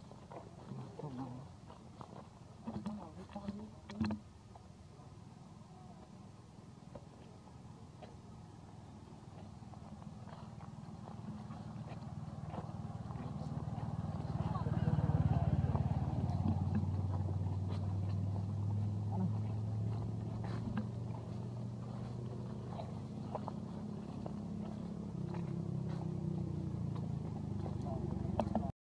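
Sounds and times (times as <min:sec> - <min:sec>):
vehicle engine humming: 0:00.0 - 0:28.8.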